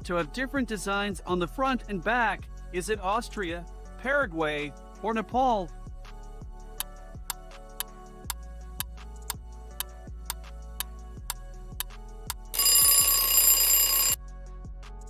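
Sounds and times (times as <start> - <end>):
soft background music: 0.0 - 15.0
alarm clock ringing: 12.6 - 14.2.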